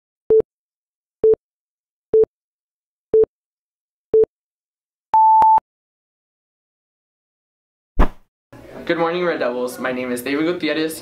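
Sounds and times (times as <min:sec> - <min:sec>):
electronic countdown beeps: 0:05.2 - 0:05.6.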